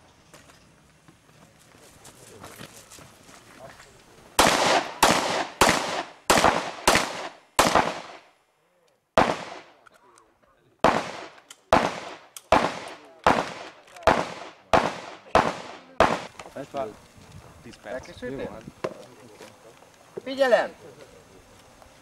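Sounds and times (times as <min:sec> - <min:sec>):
pistol shots with echo: 0:04.4 - 0:08.3, 0:09.2 - 0:09.8, 0:10.8 - 0:16.3.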